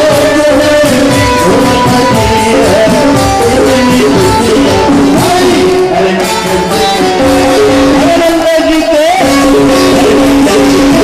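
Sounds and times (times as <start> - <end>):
held instrumental notes: 0.0 - 11.0
person singing: 0.0 - 11.0
steady drum beat: 0.0 - 11.0.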